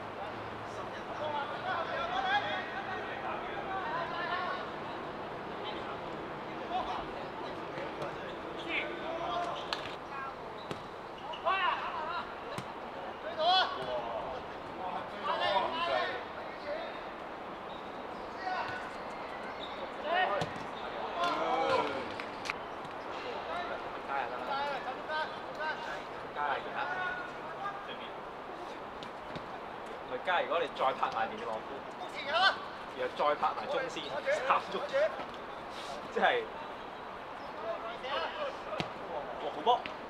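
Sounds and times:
footballers shouting: 0:00.6 - 0:09.7, 0:11.2 - 0:17.0, 0:19.9 - 0:22.5.

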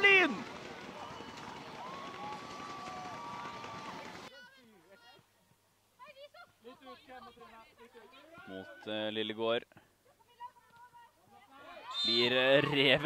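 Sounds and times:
crowd cheering: 0:00.0 - 0:04.3, 0:11.7 - 0:13.0
faint calls from players: 0:11.6 - 0:12.7.

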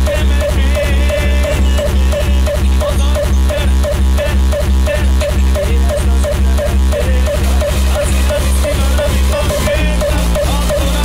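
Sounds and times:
fast kick drum: 0:00.0 - 0:11.0
repeating synth note: 0:00.0 - 0:11.0.

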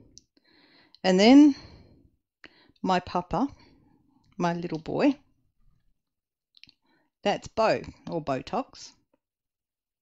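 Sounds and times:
woman speaking: 0:01.0 - 0:01.7, 0:02.8 - 0:03.6, 0:04.4 - 0:05.3, 0:07.2 - 0:09.0.

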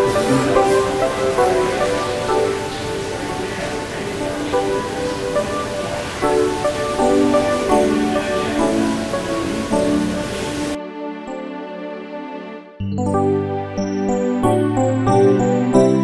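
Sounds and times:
fountain water splashing: 0:00.0 - 0:10.8
instrumental music: 0:00.0 - 0:16.0.

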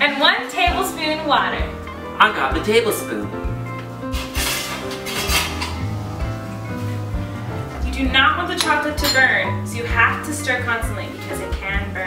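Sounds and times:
background music with sustained notes: 0:00.8 - 0:12.0
metal spoon scraping a saucepan: 0:04.3 - 0:06.1.

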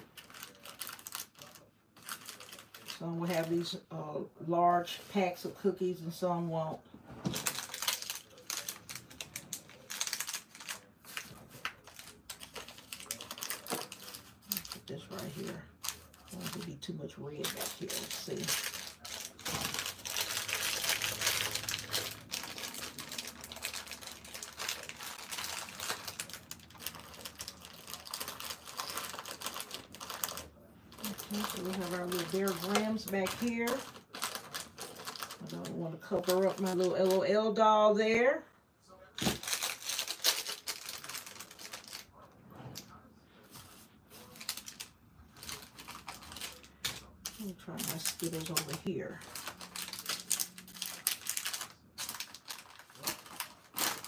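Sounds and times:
plastic wrappers crinkling: 0:00.0 - 0:03.8, 0:07.2 - 0:37.7, 0:39.2 - 0:54.0.

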